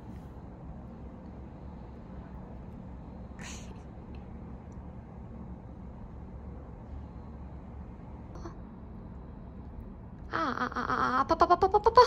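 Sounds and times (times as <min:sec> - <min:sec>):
low background hum: 0:00.0 - 0:12.0
cat high-pitched breathy sound: 0:03.3 - 0:03.9.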